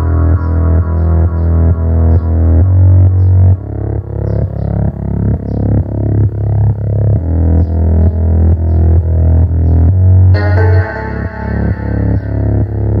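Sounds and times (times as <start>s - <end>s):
deep bass line music: 0.0s - 13.0s.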